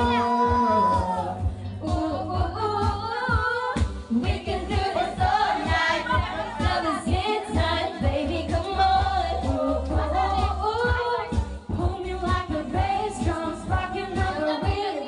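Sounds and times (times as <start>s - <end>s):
amplified pop music: 0.0s - 15.0s
women singing into microphone: 0.0s - 15.0s.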